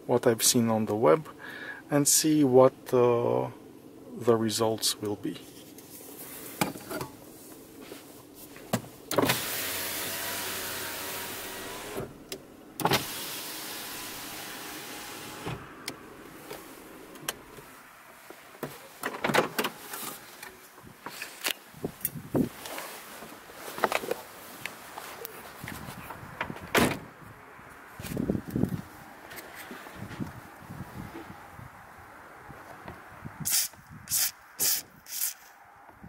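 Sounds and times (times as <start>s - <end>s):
car electric window motor: 9.1s - 17.6s.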